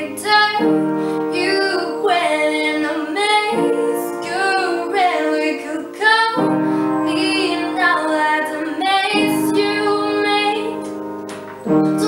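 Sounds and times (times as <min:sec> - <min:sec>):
woman singing pop ballad: 0:00.0 - 0:10.9
piano chords: 0:00.0 - 0:12.0.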